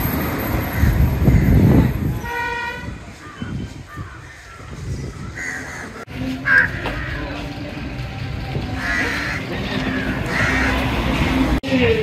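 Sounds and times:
street noise rumble: 0.0 - 12.0
crow cawing: 3.3 - 7.3, 8.8 - 10.9.

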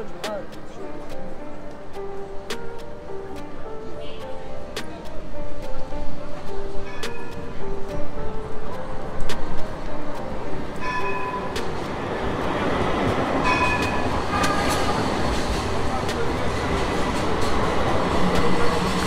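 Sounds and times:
tram running on rails: 0.0 - 19.0.

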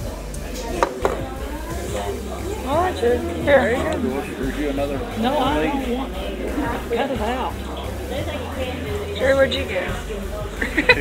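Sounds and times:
faint background talk: 0.0 - 11.0
sharp knocks on table: 0.8 - 1.3.

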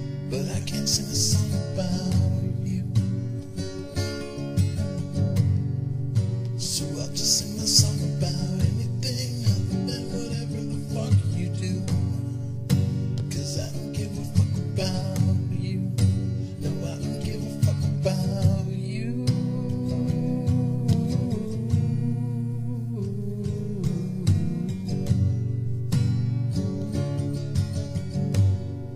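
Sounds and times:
acoustic guitar strumming: 0.0 - 28.9.

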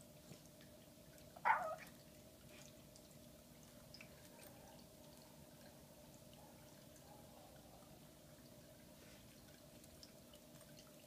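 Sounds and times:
puppy vocalizing: 1.4 - 1.9.

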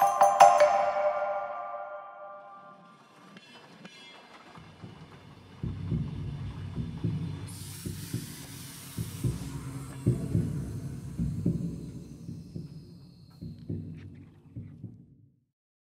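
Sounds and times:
chiming mallet percussion music: 0.0 - 3.0
high hiss: 7.5 - 12.8.

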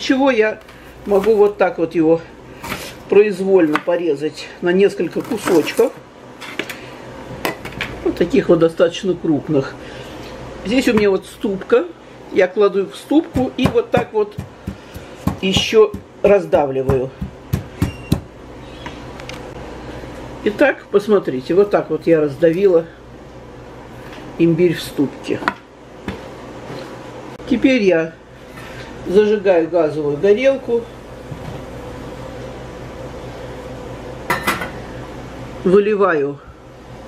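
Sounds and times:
pestle pounding in a mortar: 13.2 - 18.3.

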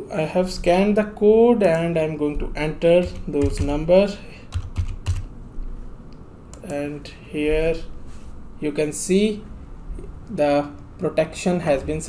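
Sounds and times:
computer keyboard keystrokes: 3.0 - 3.8, 4.5 - 5.3.

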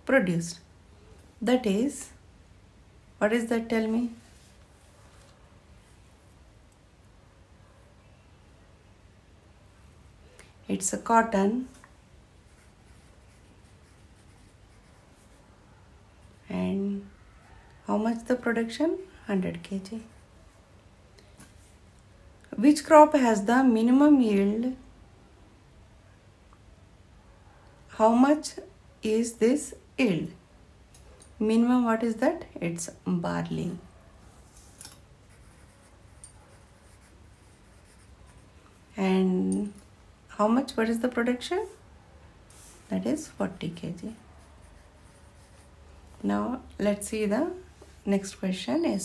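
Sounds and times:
pencil scratching on paper: 12.4 - 15.4, 35.2 - 38.5, 42.5 - 45.8.

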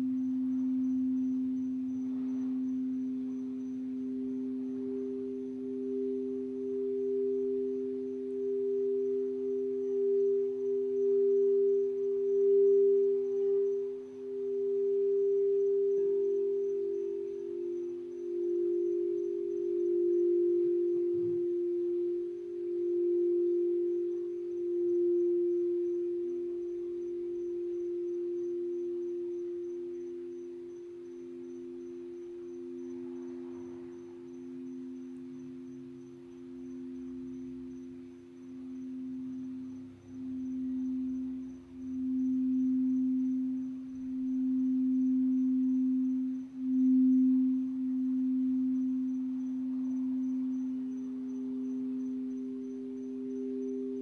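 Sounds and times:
crystal singing bowls ringing: 0.0 - 54.0.

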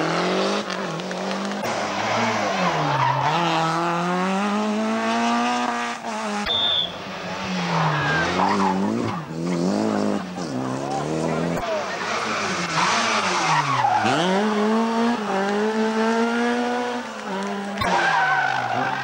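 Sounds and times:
rally car engines slowing and accelerating: 0.0 - 19.0.

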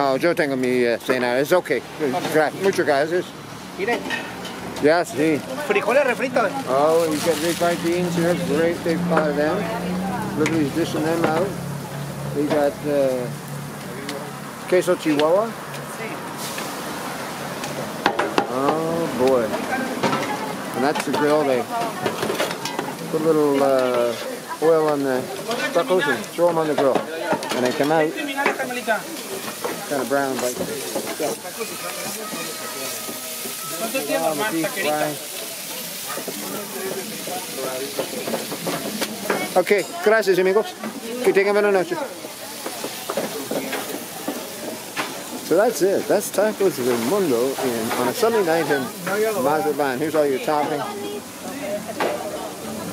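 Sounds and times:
food sizzling on a griddle: 0.0 - 52.9
faint chatter of voices: 18.5 - 45.5.

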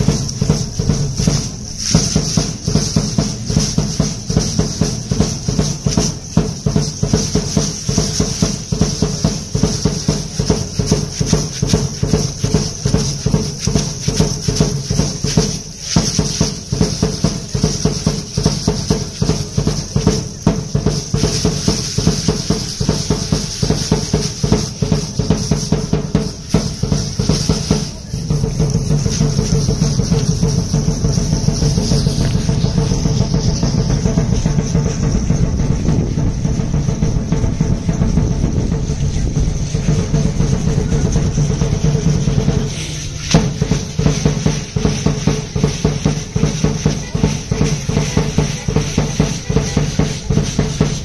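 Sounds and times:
fast steady drumming: 0.0 - 51.0.

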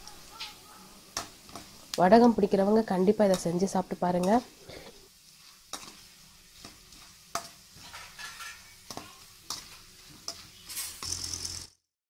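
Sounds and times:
vegetable slices sizzling in oil: 0.0 - 11.7.

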